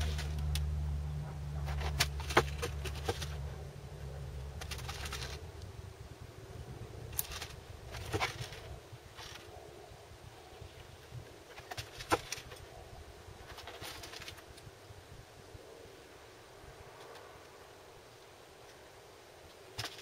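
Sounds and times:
low rumble: 0.0s - 10.6s.

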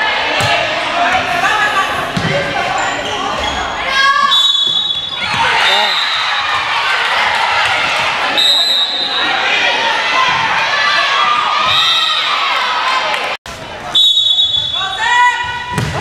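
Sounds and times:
people calling out: 1.0s - 13.1s.

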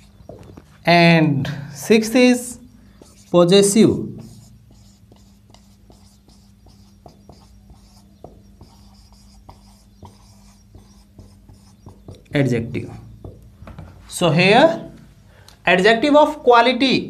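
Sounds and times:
marker pen writing on whiteboard: 0.0s - 0.8s, 2.0s - 14.0s
steady low hum: 0.0s - 15.6s.

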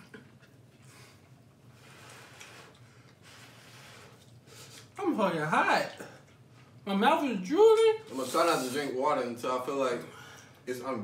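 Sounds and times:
quiet breathing: 0.8s - 4.9s.

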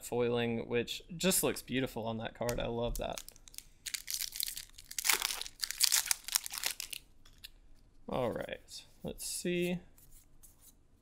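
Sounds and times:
trading cards rustling: 3.0s - 7.5s.

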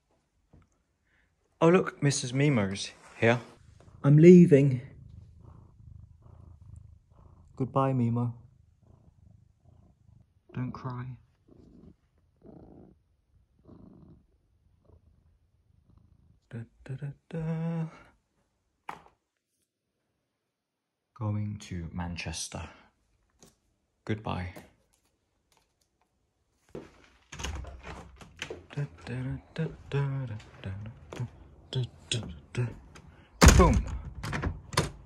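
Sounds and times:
cat purring softly: 2.2s - 17.3s.

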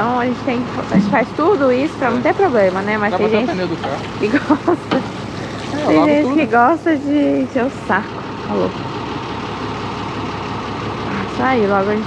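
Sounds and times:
diesel truck engine running: 0.0s - 12.0s.

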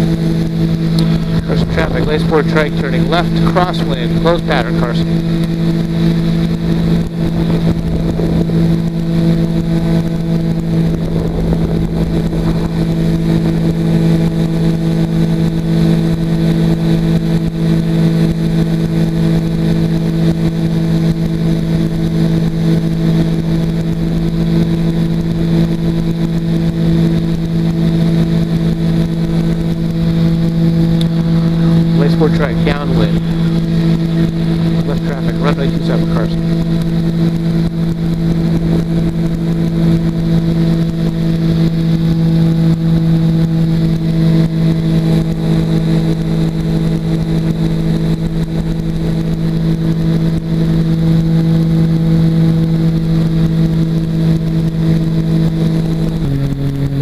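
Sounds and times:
wind rush: 0.0s - 16.5s
aircraft engine and propeller: 0.0s - 57.0s.

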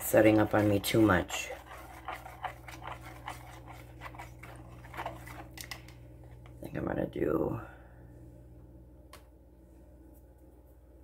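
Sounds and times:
utensil scraping in container: 0.0s - 5.8s.

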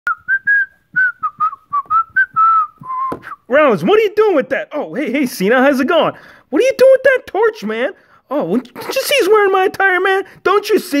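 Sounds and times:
person whistling a tune: 0.1s - 3.4s.

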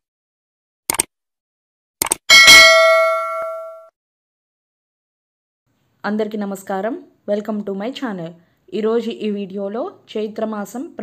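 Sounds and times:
bright bell ding: 2.3s - 3.9s.

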